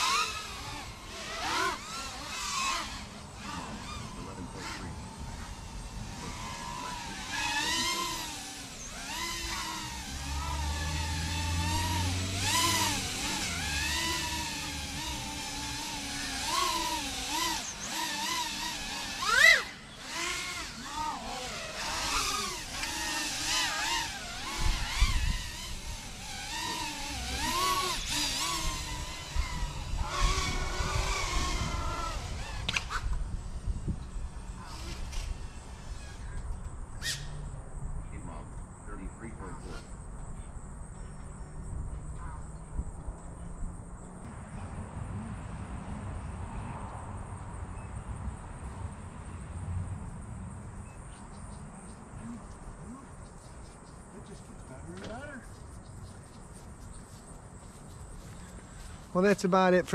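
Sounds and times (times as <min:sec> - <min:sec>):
quadcopter motors whining: 0:00.0 - 0:59.9.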